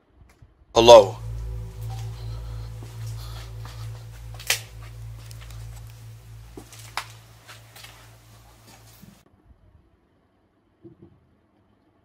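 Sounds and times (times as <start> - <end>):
steady low hum: 0.8 - 9.2.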